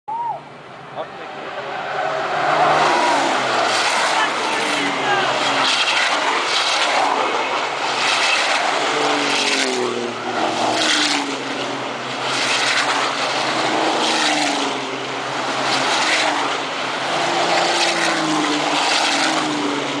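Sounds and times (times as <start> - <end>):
racing trucks passing: 0.1 - 20.0.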